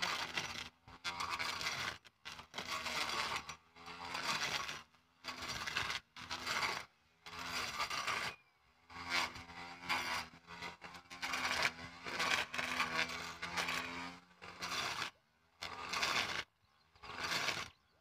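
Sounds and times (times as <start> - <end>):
blade chopping through weeds: 0.0 - 17.8
grass cutter motor humming: 0.0 - 18.0.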